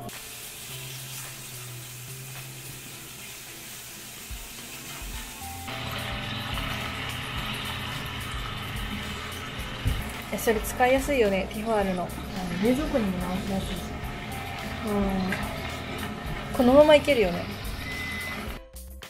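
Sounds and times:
meat sizzling in a frying pan: 0.0s - 18.0s
soft background music: 0.0s - 19.0s.

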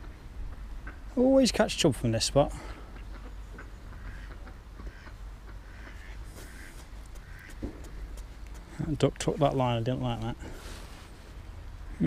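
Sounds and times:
ducks quacking faintly: 0.0s - 10.8s.

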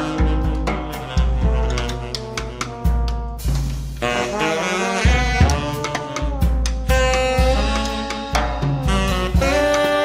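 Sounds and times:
drum hits: 0.0s - 10.0s
saxophone and trombone notes: 0.0s - 10.0s.

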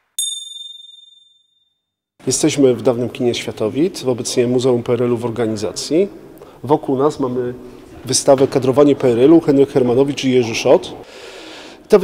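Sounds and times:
high bell ding: 0.2s - 1.8s.

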